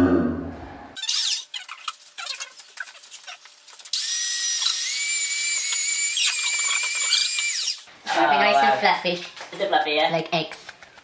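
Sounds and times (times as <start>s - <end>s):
hand mixer motor whining: 4.0s - 7.8s.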